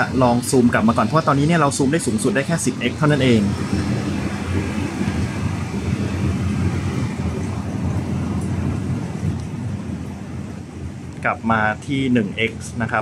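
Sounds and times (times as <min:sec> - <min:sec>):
city traffic rumble: 0:00.0 - 0:13.0.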